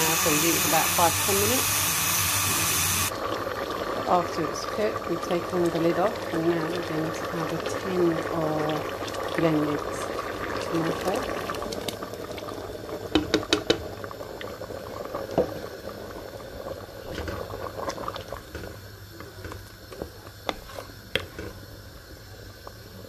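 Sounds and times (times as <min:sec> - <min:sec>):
liquid pouring into a pot: 0:03.1 - 0:18.8
simmering liquid bubbling: 0:03.1 - 0:23.0
wooden spoon stirring in metal pot: 0:20.0 - 0:21.4.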